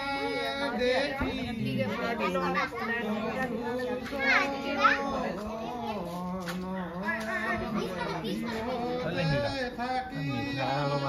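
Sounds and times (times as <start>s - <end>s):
people and children talking: 0.0s - 11.0s.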